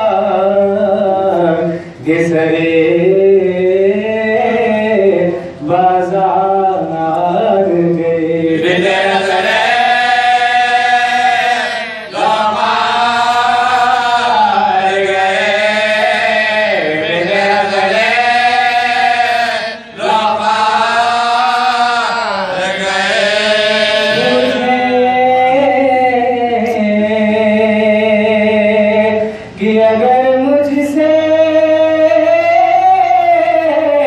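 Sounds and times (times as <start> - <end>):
men chanting a lament: 0.0 - 34.0.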